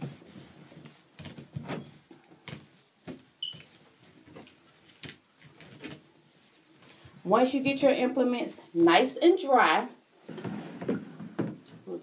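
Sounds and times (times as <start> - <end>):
cloth towel rubbing: 0.0 - 2.0.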